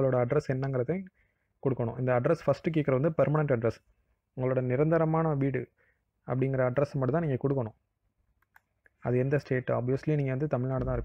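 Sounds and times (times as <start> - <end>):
man speaking: 0.0 - 7.8, 9.0 - 11.0
computer mouse clicks: 8.4 - 9.0.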